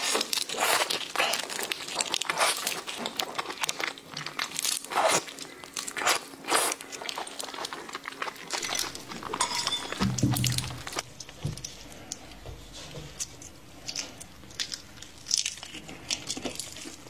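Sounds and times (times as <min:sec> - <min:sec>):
shrimp shell cracking and tearing: 0:00.0 - 0:09.4, 0:13.9 - 0:17.0.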